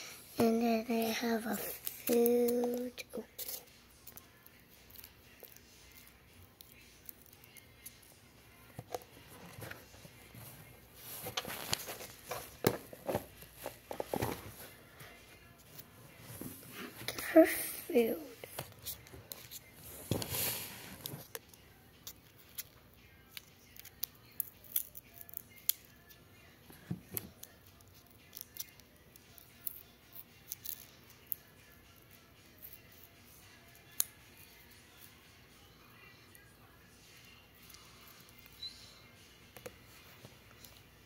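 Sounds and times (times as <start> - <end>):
rustling handling noise: 8.8 - 17.1.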